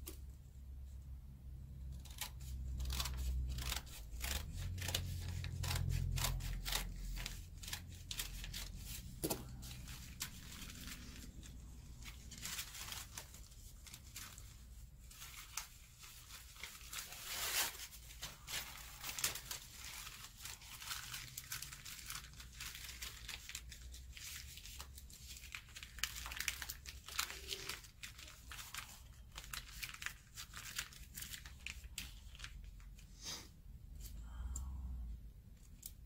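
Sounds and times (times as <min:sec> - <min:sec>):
paper strips rustling: 0:02.0 - 0:33.1.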